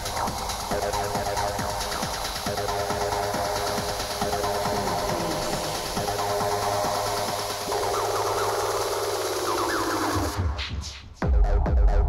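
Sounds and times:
steady low drone: 0:00.0 - 0:09.9
buzzing techno synth: 0:00.0 - 0:10.4.

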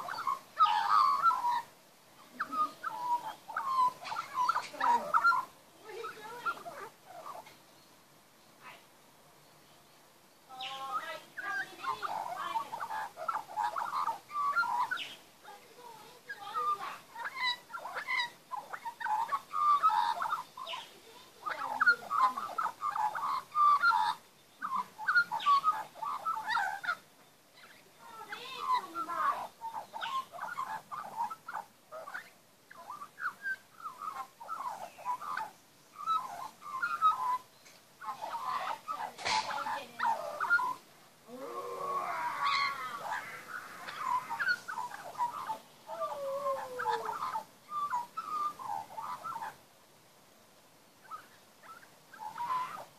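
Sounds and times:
magpie singing: 0:00.0 - 0:07.5, 0:10.5 - 0:49.6, 0:51.0 - 0:52.9.

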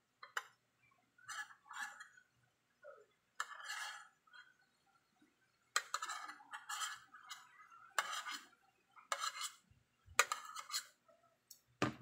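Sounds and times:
spoon scraping plastic plate: 0:01.2 - 0:02.3, 0:03.4 - 0:04.6, 0:05.7 - 0:11.0.

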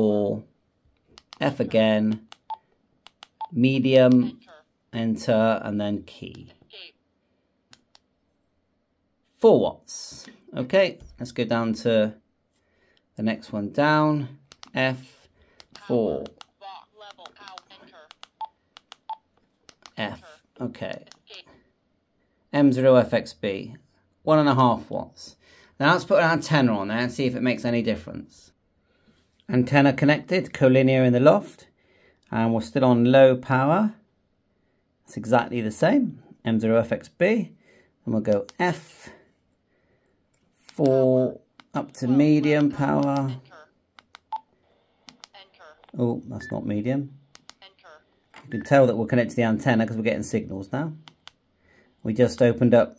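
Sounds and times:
radio button clicks: 0:45.1 - 0:45.4.

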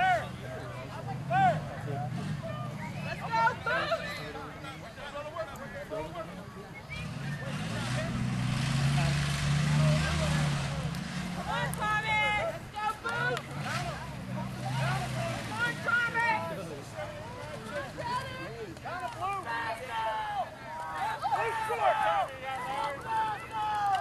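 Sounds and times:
vehicle driving past: 0:00.0 - 0:04.5, 0:06.2 - 0:18.4
people talking: 0:00.0 - 0:24.0.

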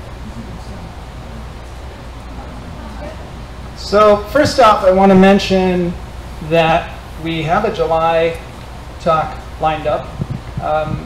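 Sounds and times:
distant voices murmuring: 0:00.0 - 0:11.0
steady low hum: 0:00.0 - 0:11.0.

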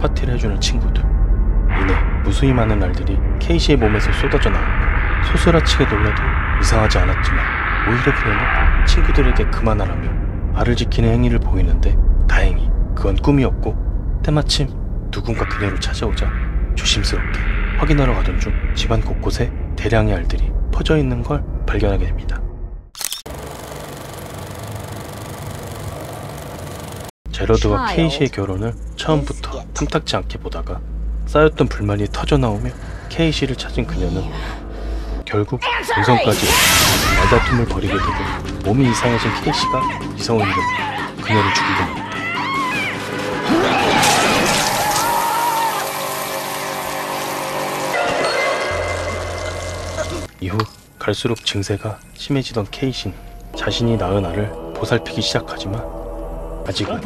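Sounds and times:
murky wet ambience: 0:00.0 - 0:22.0
low drone: 0:00.0 - 0:22.9, 0:27.3 - 0:35.4, 0:51.4 - 0:57.0
low hum: 0:00.0 - 0:35.3, 0:51.2 - 0:57.0
dark film score: 0:00.0 - 0:57.0
person narrating: 0:27.4 - 0:30.1, 0:56.7 - 0:57.0
woman screaming: 0:44.8 - 0:46.0.

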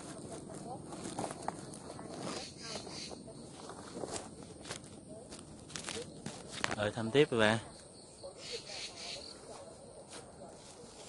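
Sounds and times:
dry straw rustling and crackling: 0:00.0 - 0:07.6, 0:08.2 - 0:11.0.

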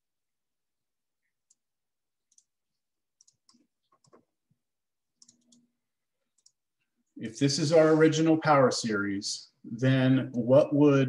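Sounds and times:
computer mouse clicks: 0:03.2 - 0:04.3, 0:05.2 - 0:05.7, 0:06.3 - 0:06.6.

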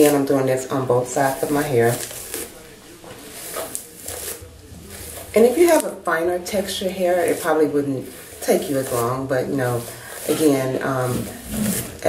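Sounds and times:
brush swishing through wet hair: 0:00.0 - 0:12.0.

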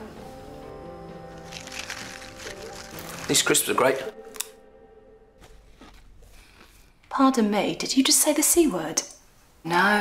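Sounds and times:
crisp being bitten: 0:01.3 - 0:03.6.

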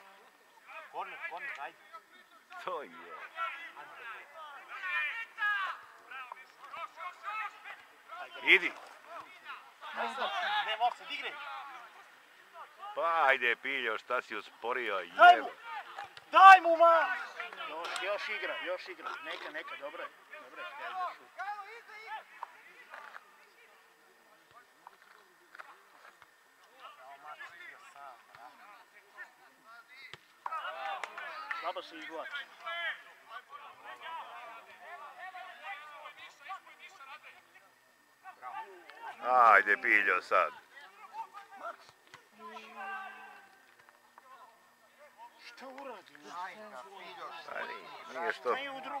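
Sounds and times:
men shouting and calling out: 0:00.0 - 0:24.2, 0:26.2 - 0:49.0.

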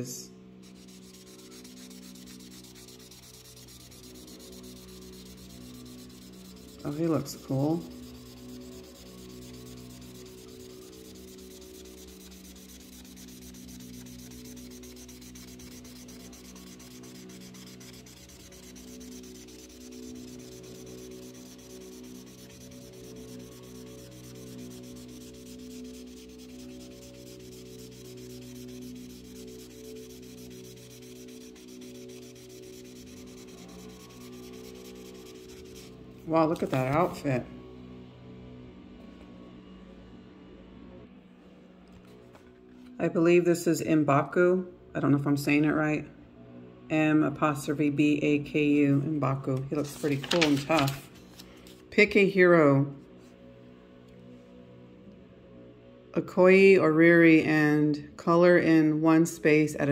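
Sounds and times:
soft background music: 0:00.0 - 0:59.9
marker rubbing on paper: 0:00.6 - 0:37.2.

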